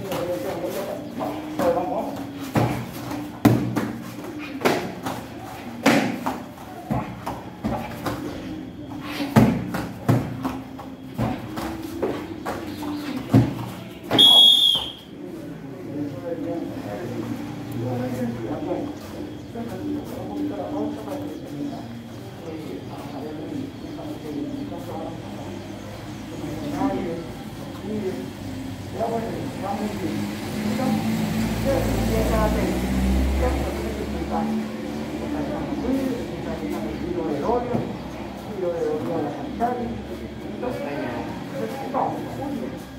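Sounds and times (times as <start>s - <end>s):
shrill high tone: 14.1s - 15.0s
car passing: 30.0s - 36.7s.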